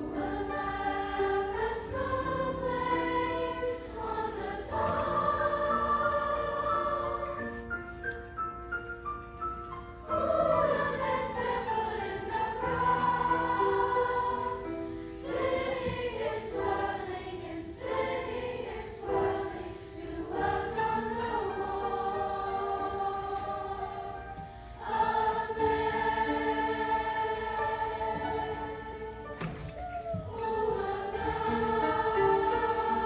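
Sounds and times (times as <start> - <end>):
choir singing held chords: 0.0 - 7.8, 10.0 - 29.6, 30.2 - 33.0.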